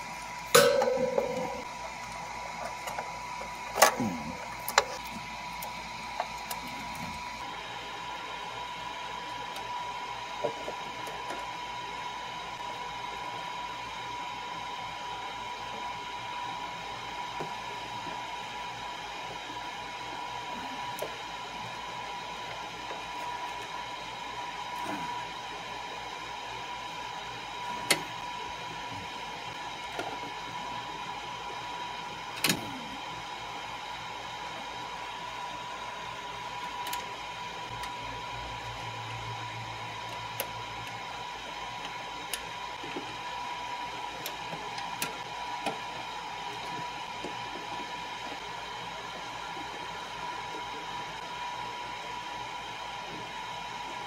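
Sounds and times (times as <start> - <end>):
steady whir with high whine: 0.0 - 54.0.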